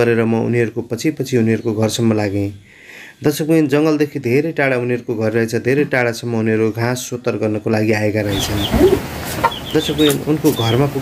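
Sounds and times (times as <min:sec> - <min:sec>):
person speaking: 0:08.1 - 0:11.0
chickens clucking: 0:08.2 - 0:11.0
high falling bird chirps: 0:08.3 - 0:11.0.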